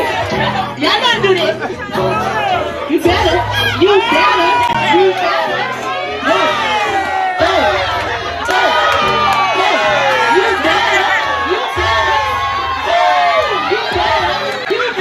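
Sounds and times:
crowd shouting and cheering: 0.0 - 15.0
music with heavy bass line: 0.0 - 15.0.

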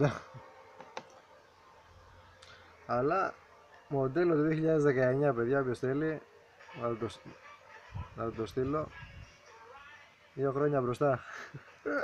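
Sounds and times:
man's voice: 2.9 - 12.0.

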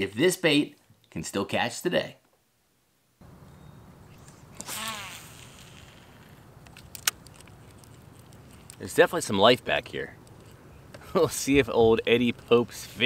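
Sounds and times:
sharp clicks: 4.2 - 8.9.

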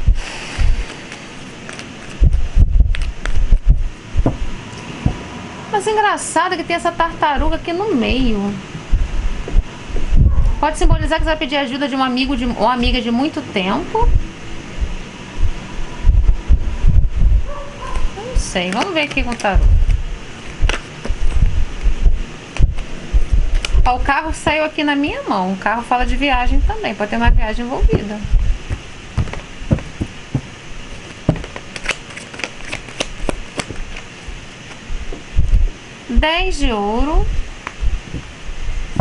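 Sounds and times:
cards being shuffled: 0.7 - 4.4, 18.0 - 21.9, 23.5 - 23.9, 28.7 - 35.2
cards handled on cloth table: 0.9 - 2.2.

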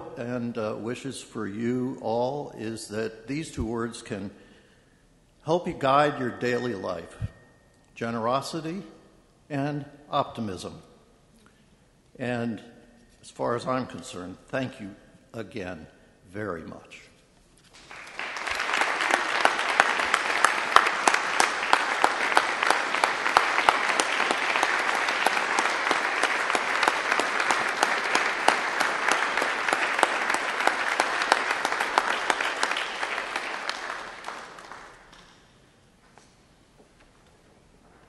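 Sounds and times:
audience applauding: 17.8 - 35.5.

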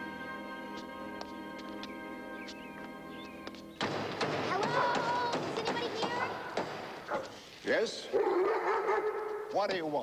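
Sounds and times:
dog barking and whining: 8.1 - 9.5.

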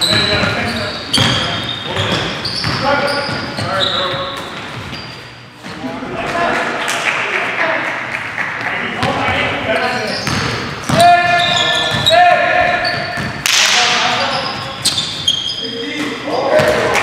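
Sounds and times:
players' voices: 0.0 - 4.8, 5.4 - 17.0
basketball bouncing: 0.0 - 5.0, 9.0 - 9.6, 10.2 - 15.4
sneakers squeaking on hardwood floor: 0.0 - 5.9, 9.0 - 16.9.

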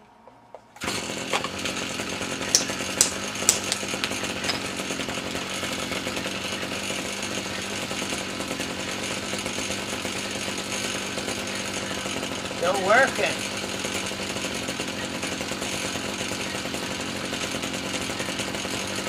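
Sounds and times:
string trimmer engine running: 0.8 - 19.0
sharp clicks: 2.5 - 4.7.

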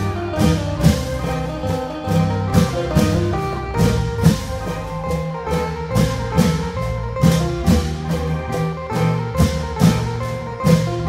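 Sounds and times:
deep drum strokes: 0.0 - 11.0
held melodic notes: 0.0 - 11.0.

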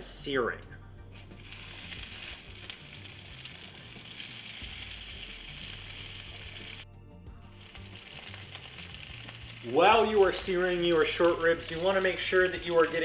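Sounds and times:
meat sizzling in a frying pan: 1.1 - 13.0.

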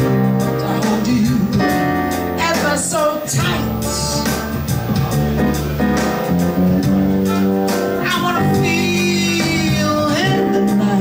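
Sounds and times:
electric bass: 0.0 - 11.0
jazz band playing: 0.0 - 11.0
keyboard accompaniment: 0.0 - 11.0.

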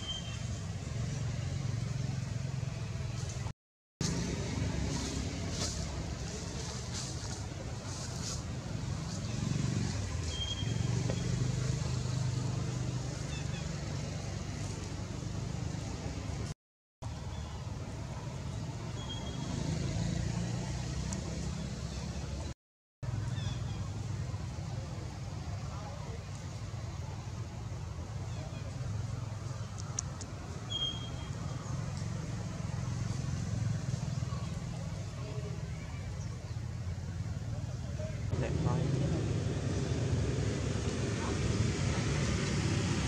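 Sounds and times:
faint short high chirp: 0.0 - 0.5, 10.2 - 11.3, 30.7 - 31.3
passing vehicle engine rumble: 0.3 - 16.5, 17.1 - 43.0
low engine rumble: 0.5 - 18.9.

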